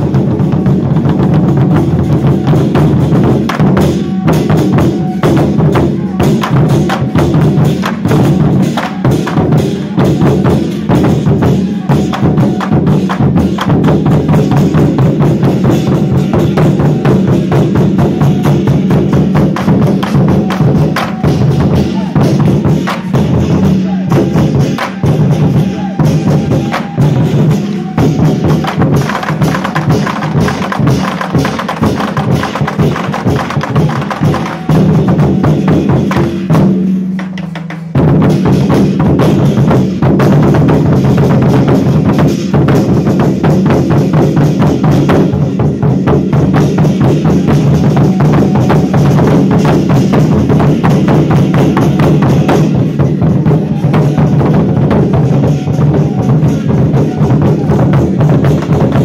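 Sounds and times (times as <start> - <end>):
barrel drums beaten fast: 0.0 - 59.0.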